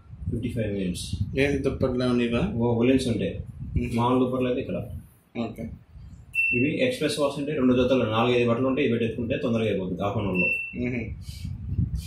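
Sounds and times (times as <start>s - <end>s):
man talking: 0.4s - 5.8s, 6.5s - 11.5s
short electronic beep: 6.4s - 6.8s, 10.3s - 10.9s.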